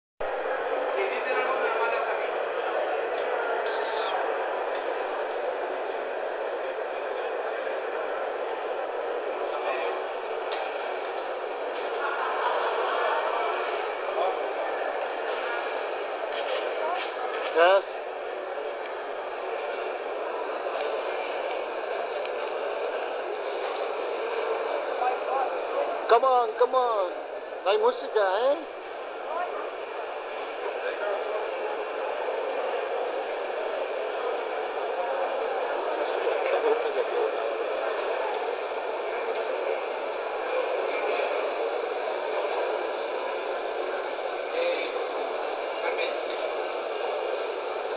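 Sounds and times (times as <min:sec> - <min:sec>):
crowd chatter: 0:00.2 - 0:47.9.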